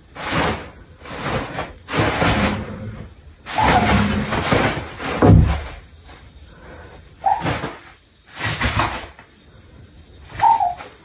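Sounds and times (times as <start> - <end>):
toilet paper rustling: 0.0 - 6.3, 7.2 - 9.3.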